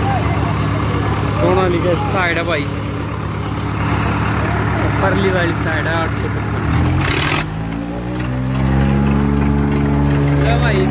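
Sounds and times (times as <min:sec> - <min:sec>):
crowd voices: 0:00.0 - 0:10.9
diesel tractor engine idling: 0:00.0 - 0:10.9.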